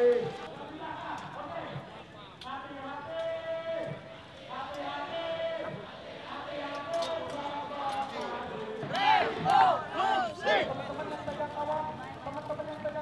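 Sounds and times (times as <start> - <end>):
crowd shouting and chanting: 0.0 - 13.0.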